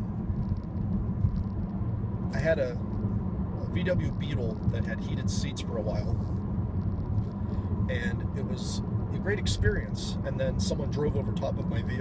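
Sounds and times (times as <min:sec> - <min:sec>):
car road rumble inside cabin: 0:00.0 - 0:12.0.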